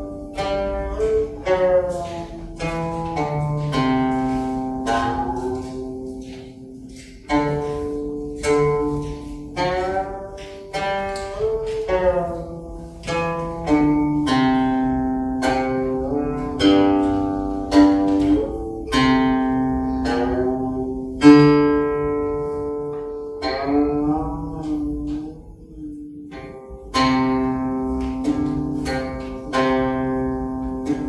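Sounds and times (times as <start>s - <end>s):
plucked zither notes: 0.0s - 31.0s.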